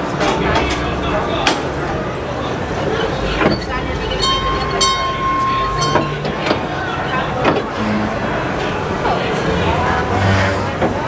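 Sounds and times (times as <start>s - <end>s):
train cars rumbling: 0.0s - 11.0s
steady high tone: 0.4s - 11.0s.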